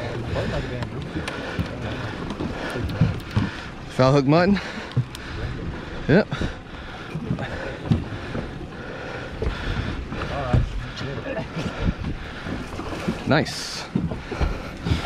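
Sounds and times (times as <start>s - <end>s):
outboard boat motors running: 0.0s - 15.0s.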